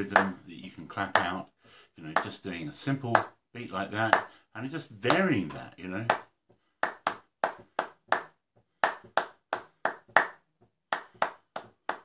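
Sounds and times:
hands clapping a rhythm: 0:00.0 - 0:12.0.

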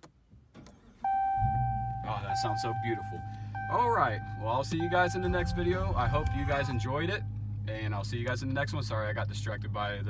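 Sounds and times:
car engine starting and idling: 0:00.0 - 0:10.0
steady high tone: 0:01.1 - 0:07.4.

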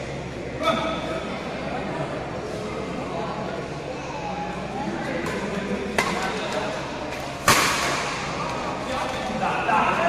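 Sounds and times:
loud echoing racket hit: 0:05.2 - 0:06.4, 0:07.4 - 0:08.6
rackets hitting shuttlecock: 0:05.2 - 0:06.6.

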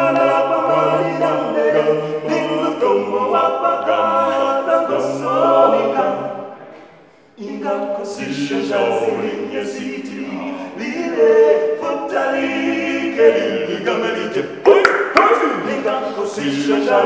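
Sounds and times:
men singing gospel in harmony: 0:00.0 - 0:06.6, 0:07.2 - 0:17.0.

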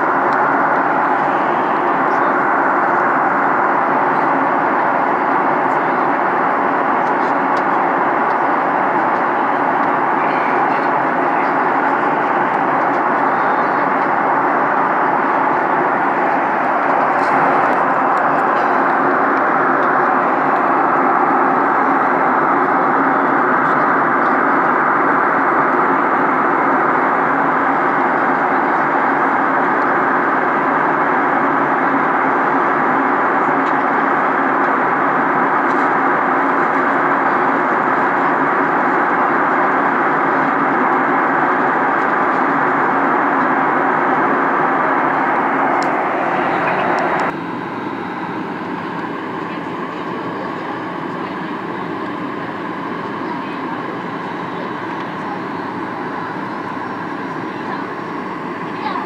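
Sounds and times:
airliner cabin noise: 0:00.0 - 0:59.0.

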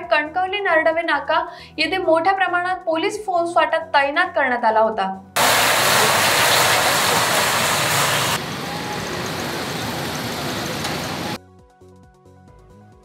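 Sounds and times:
faint background music: 0:00.0 - 0:05.4
road traffic rushing: 0:05.4 - 0:11.4.

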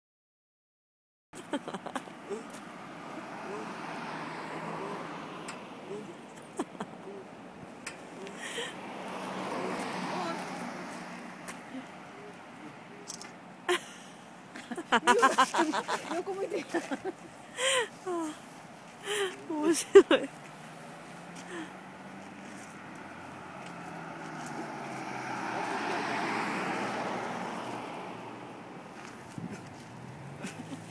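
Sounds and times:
vehicle passing on road: 0:01.7 - 0:30.9
faint voice: 0:03.2 - 0:03.9, 0:05.8 - 0:06.3, 0:09.5 - 0:10.9
sharp click: 0:13.1 - 0:13.4.

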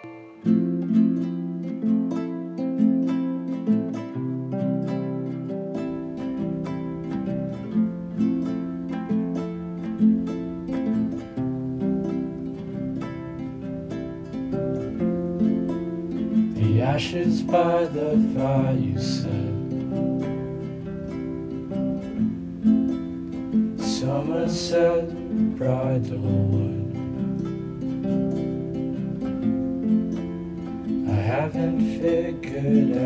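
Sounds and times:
plucked string notes: 0:00.0 - 0:33.0.

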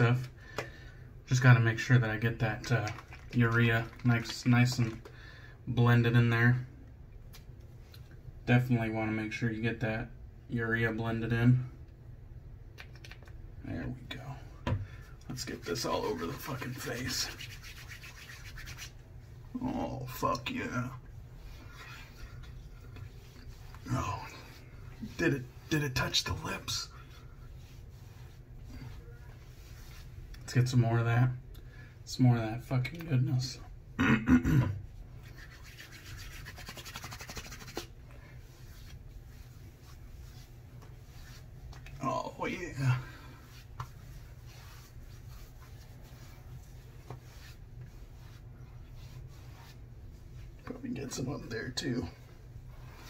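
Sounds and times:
low room hum: 0:00.0 - 0:53.0
hands rubbing and patting face: 0:02.6 - 0:05.1, 0:12.7 - 0:13.5, 0:15.3 - 0:26.8, 0:27.5 - 0:30.5, 0:35.0 - 0:51.2.

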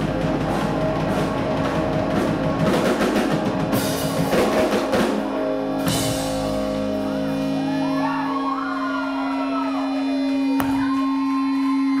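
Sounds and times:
electric guitar feedback drone: 0:00.0 - 0:12.0.

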